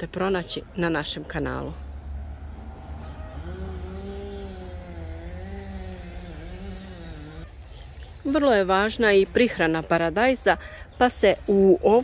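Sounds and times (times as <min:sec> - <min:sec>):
low steady rumble: 0:01.4 - 0:08.9
droning hum: 0:02.3 - 0:08.0.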